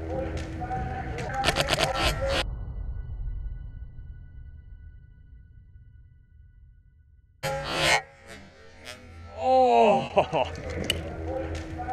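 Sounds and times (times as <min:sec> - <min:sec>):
sharp clicks: 0:01.3 - 0:02.4
man exclaiming: 0:09.4 - 0:10.6.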